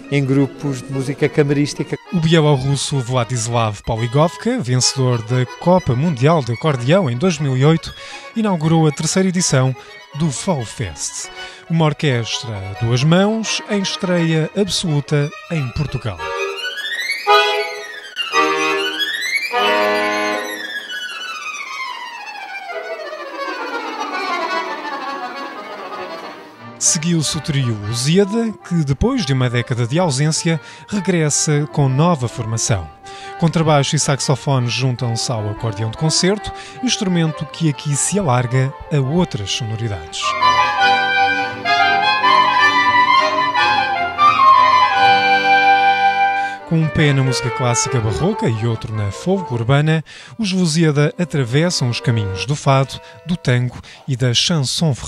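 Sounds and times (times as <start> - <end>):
button accordion playing: 0.0 - 54.1
soprano saxophone melody: 12.4 - 26.8, 38.4 - 49.7
double bass: 37.0 - 49.7.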